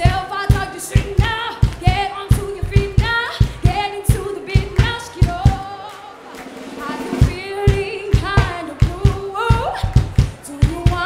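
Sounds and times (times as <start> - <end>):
frame drum beat: 0.0 - 5.7, 6.4 - 11.0
woman singing: 0.0 - 11.0.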